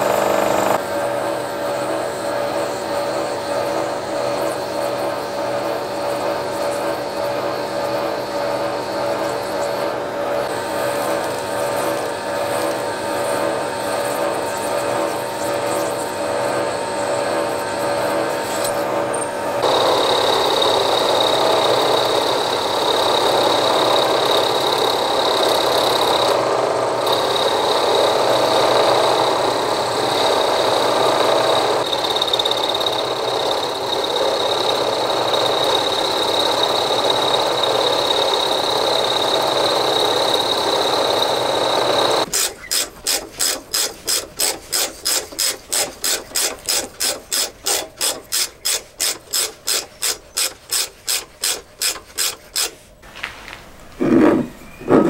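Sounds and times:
milling machine cutting steel: 0.0 - 52.8
tap wrench rasping clicks: 42.3 - 52.7.

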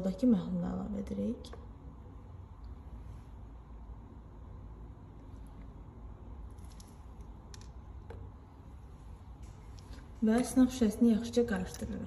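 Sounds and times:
glass pipette and test tubes clicking: 11.4 - 12.0.

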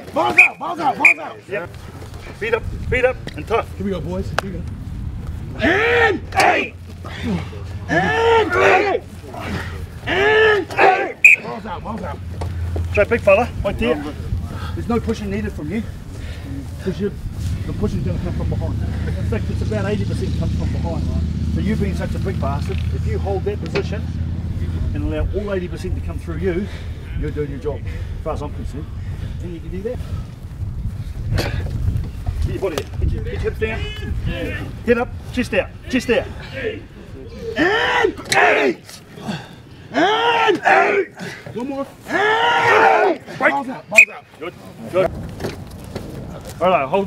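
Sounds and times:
men shouting long calls: 0.0 - 1.5, 5.5 - 12.2, 35.9 - 44.4
short sharp whistle: 0.4 - 1.3, 11.2 - 11.5, 44.0 - 44.2
wind rumble on microphone: 1.7 - 8.2, 11.9 - 37.3, 44.8 - 47.0.

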